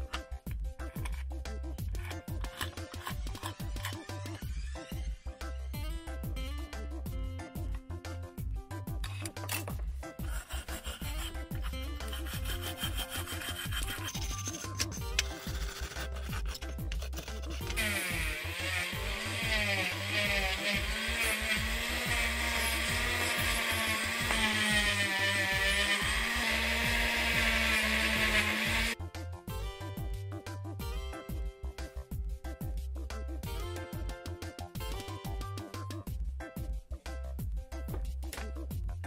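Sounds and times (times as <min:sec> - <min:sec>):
background music with low beat: 0:00.0 - 0:39.0
rotary tool grinding metal: 0:01.9 - 0:04.3, 0:09.1 - 0:29.0
paint scraping strokes: 0:10.2 - 0:17.7.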